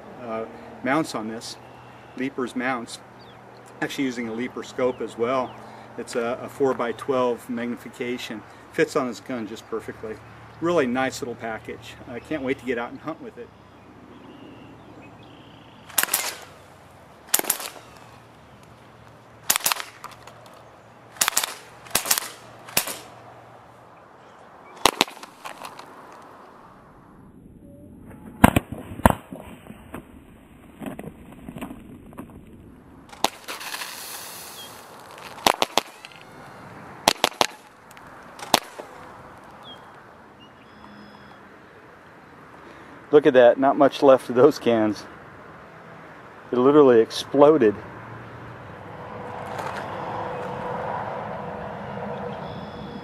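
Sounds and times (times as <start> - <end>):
air rifle shots: 15.8 - 18.3, 19.4 - 23.2, 24.8 - 25.8, 33.1 - 36.4, 37.0 - 37.8, 38.4 - 39.1.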